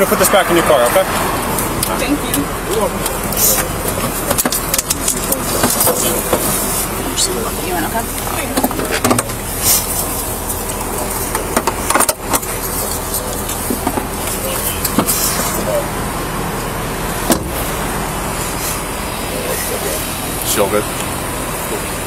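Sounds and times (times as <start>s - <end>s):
vehicle and road noise: 0.0s - 22.0s.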